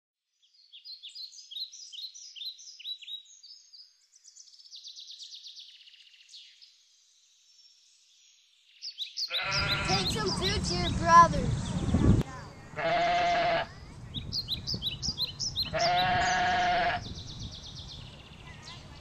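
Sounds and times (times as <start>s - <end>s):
outdoor background noise: 0.2s - 19.0s
birds chirping: 0.4s - 19.0s
sheep bleating: 9.3s - 10.3s, 12.8s - 13.7s, 15.7s - 17.0s.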